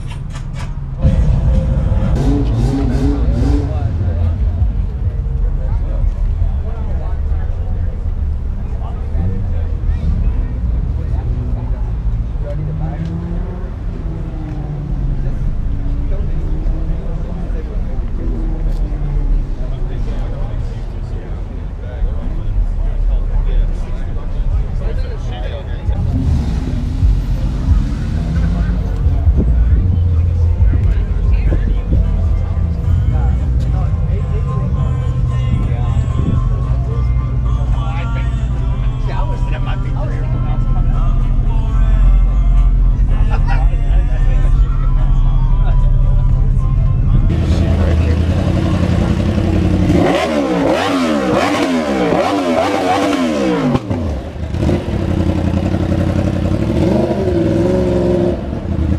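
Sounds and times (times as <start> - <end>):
crowd chatter: 0.0 - 58.9
outdoor background noise: 0.0 - 58.9
music: 27.0 - 48.9.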